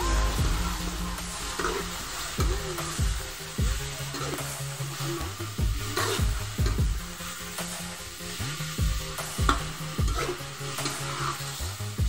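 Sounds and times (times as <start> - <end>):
metal utensil stirring in pan: 0.0 - 11.9
background music: 0.0 - 12.0
food sizzling in oil: 0.0 - 12.0.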